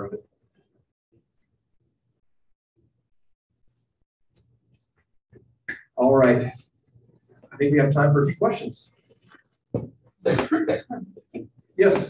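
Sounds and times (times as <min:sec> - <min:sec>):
person coughing: 0:10.2 - 0:11.1.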